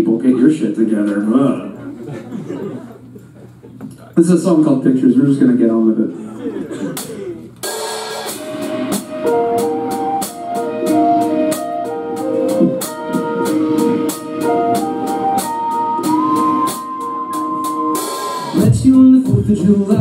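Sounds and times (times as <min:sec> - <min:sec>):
drum kit beat: 0:06.9 - 0:20.0
sustained melody line: 0:08.4 - 0:20.0.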